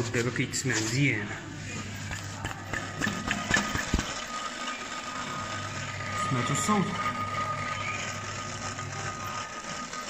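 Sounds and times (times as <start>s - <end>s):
steady hum: 0.0s - 10.0s
alternator scratchy rattle: 1.7s - 10.0s.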